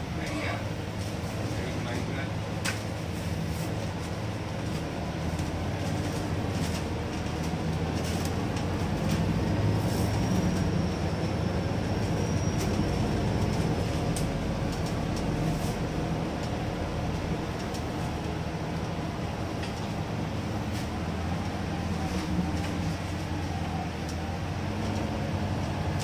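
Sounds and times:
bus engine and road rumble: 0.0s - 26.0s.

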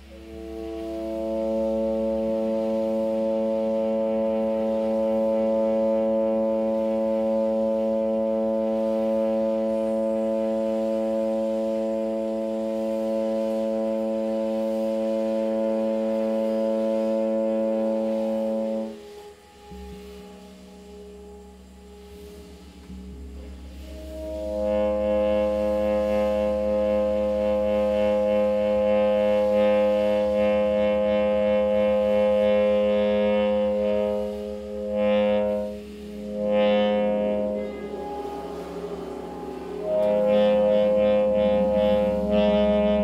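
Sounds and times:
quiet low sounds: 0.0s - 43.0s
tenor saxophone long low note: 0.0s - 43.0s.

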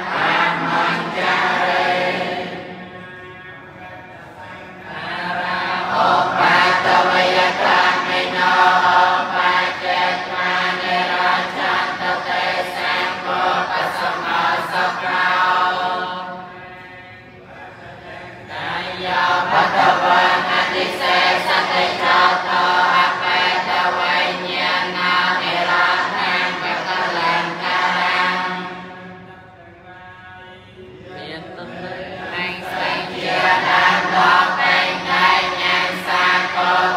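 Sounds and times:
monks chanting in unison: 0.0s - 36.9s.

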